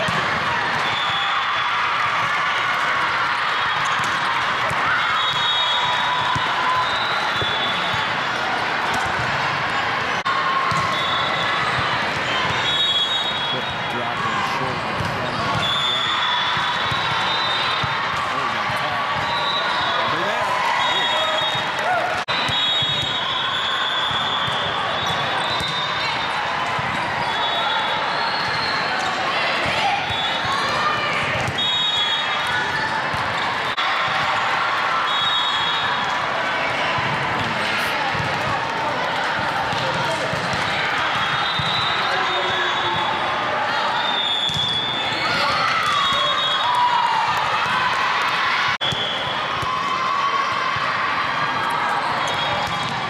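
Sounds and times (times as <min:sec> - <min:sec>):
volleyballs bouncing and struck: 0:00.0 - 0:01.2, 0:02.0 - 0:12.7, 0:14.9 - 0:19.4, 0:28.4 - 0:31.7, 0:36.0 - 0:41.8, 0:51.6 - 0:53.0
hubbub of voices: 0:00.0 - 0:53.0.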